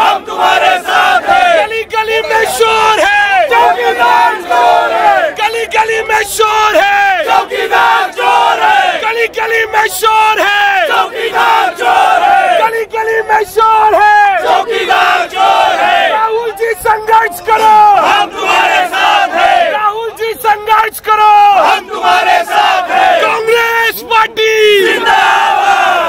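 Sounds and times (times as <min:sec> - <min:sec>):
crowd of men shouting slogans: 0:00.0 - 0:26.0.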